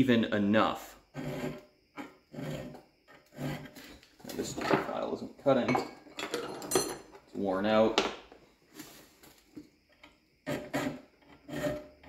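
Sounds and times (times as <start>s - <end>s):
file scraping on steel: 1.1s - 4.1s, 10.4s - 12.0s.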